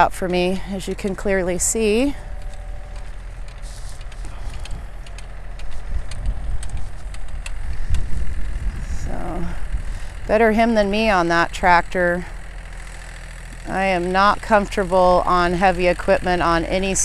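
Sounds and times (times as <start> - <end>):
wind buffeting microphone: 0.0 - 11.2
distant tractor engine hum: 0.0 - 17.0.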